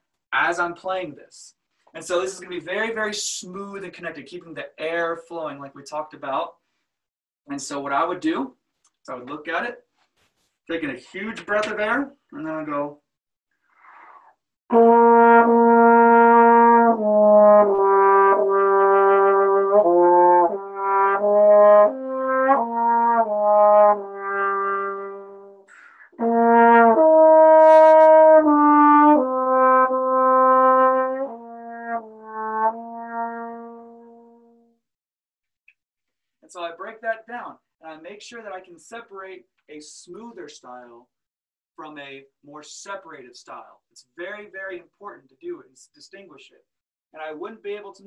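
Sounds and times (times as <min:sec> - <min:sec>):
trombone slow melody: 0:14.7 - 0:34.8
faint breath in: 0:25.7 - 0:26.1.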